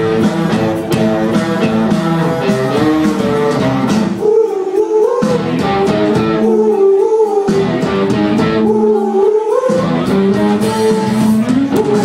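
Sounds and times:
electric guitar: 0.0 - 4.4, 5.0 - 12.0
drums: 0.0 - 12.0
person singing: 0.0 - 12.0.

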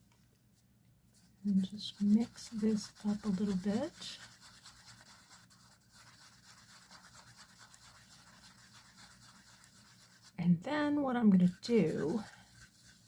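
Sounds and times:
stir stick scraping inside cup: 1.5 - 10.4, 11.4 - 13.0.

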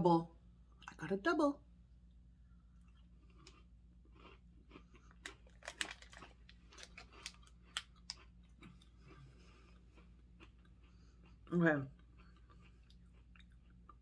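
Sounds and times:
chewing crisp cereal: 2.5 - 14.0.

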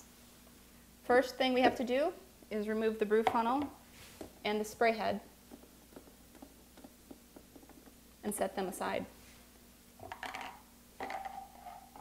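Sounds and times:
plastic parts knocking on countertop: 10.0 - 11.4.

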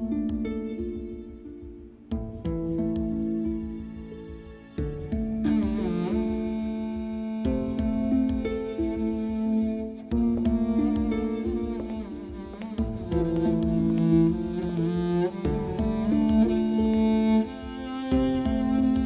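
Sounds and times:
low pulsing beat: 0.0 - 19.0
sustained bowed strings: 0.0 - 19.0.

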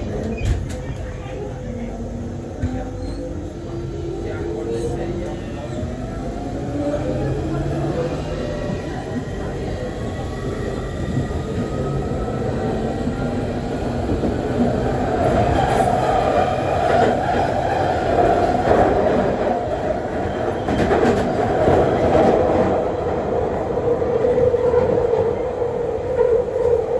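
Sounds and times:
train running noise: 0.0 - 26.9.

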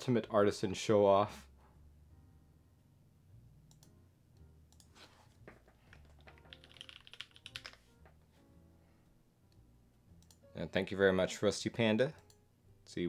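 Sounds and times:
quiet background music: 0.0 - 13.0
typing on keyboard: 5.9 - 7.8.

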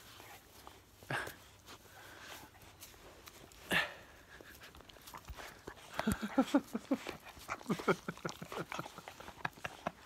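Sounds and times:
puppies vocalising: 4.1 - 10.0.

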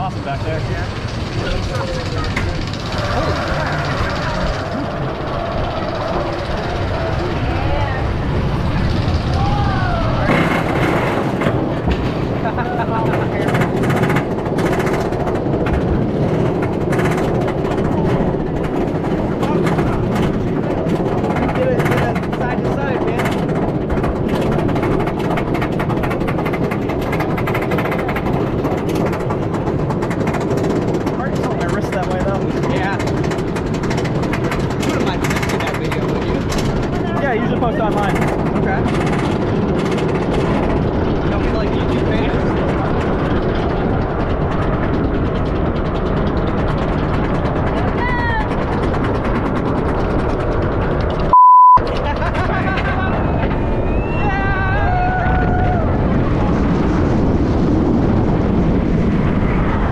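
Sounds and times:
riders' voices: 0.0 - 11.6, 12.4 - 14.2, 19.2 - 23.8, 30.7 - 44.2
roller coaster chain lift clatter: 0.0 - 59.9
censor beep: 51.3 - 51.8.

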